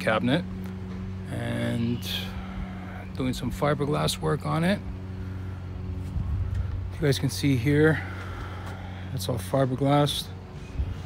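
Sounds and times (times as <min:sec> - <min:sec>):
motor humming: 0:00.0 - 0:11.0.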